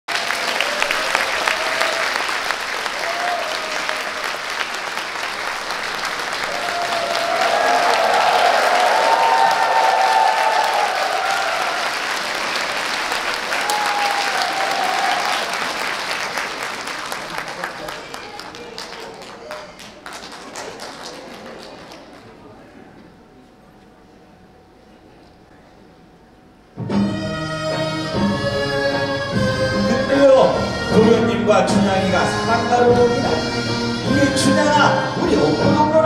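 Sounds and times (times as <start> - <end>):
audience applauding: 0.1 - 22.7.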